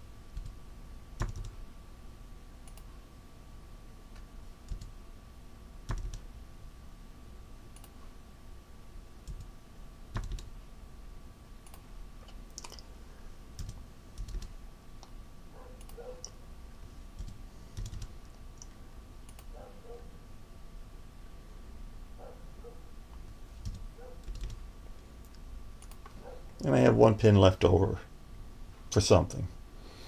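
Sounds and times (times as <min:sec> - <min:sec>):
faint electrical hum: 0:00.0 - 0:30.0
mouse and keyboard clicks: 0:11.7 - 0:12.8.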